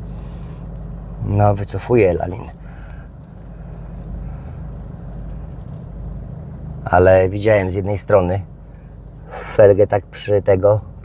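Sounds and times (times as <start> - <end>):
car engine running at low revs: 0.0 - 11.0.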